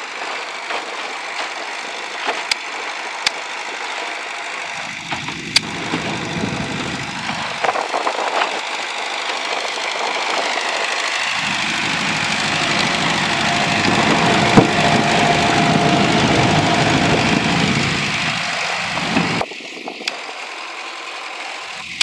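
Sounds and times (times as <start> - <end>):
water churning: 0.0 - 19.4
steady whine: 0.0 - 22.0
tractor engine running: 0.0 - 22.0.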